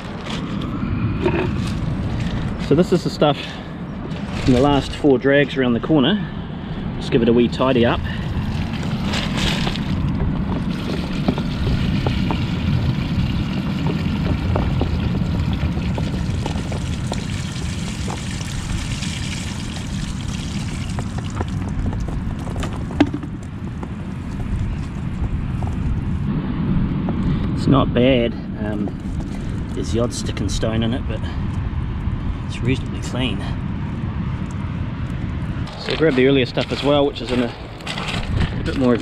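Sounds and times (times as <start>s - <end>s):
steady low rumble: 0.0s - 39.0s
water pouring from bucket: 8.2s - 21.7s
water draining through mesh: 14.8s - 21.5s.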